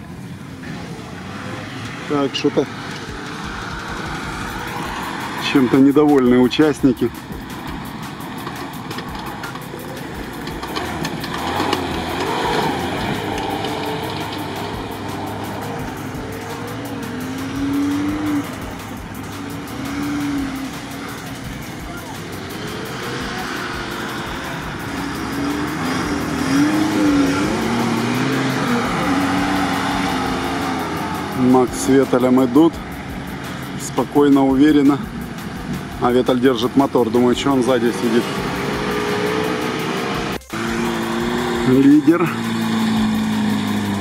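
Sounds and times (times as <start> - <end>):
engines revving hard: 0.0 - 44.0.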